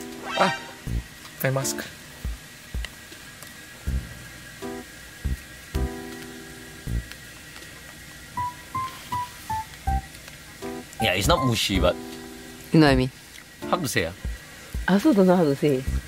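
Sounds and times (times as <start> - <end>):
plucked and keyboard music: 0.0 - 2.9, 3.9 - 7.1, 8.4 - 14.9.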